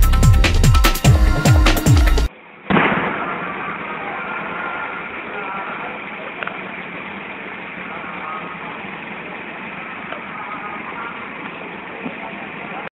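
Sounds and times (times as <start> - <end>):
firework crack: 2.3 - 12.3
faint firework pops: 2.7 - 3.8
crowd murmur of voices: 3.1 - 12.9.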